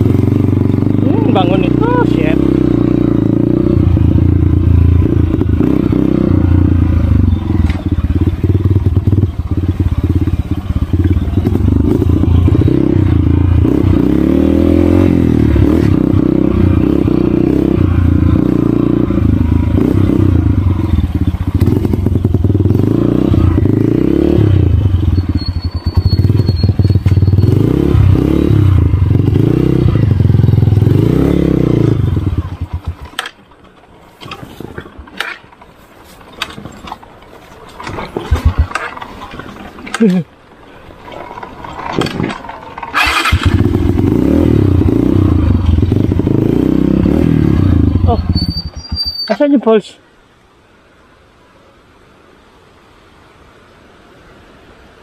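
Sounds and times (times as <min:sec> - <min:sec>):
dirt bike engine revving: 0:00.0 - 0:33.2, 0:41.1 - 0:49.4.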